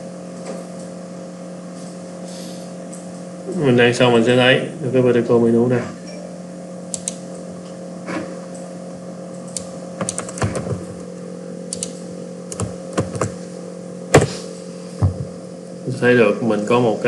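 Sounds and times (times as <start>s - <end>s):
steady low hum: 0.0s - 17.0s
computer keyboard and mouse clicks: 6.9s - 7.2s, 9.4s - 11.0s, 11.7s - 13.4s.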